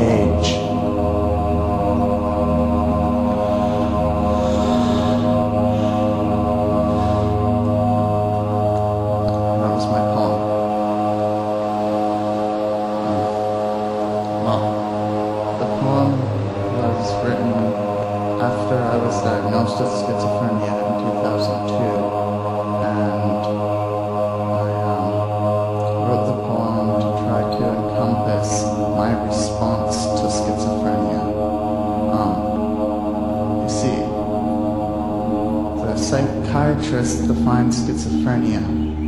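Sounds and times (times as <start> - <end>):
droning chant-like music: 0.0 - 39.0.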